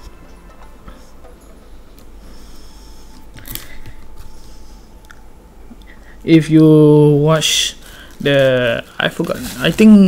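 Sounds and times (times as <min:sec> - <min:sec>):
plastic wrapping crinkling: 0:07.8 - 0:10.0.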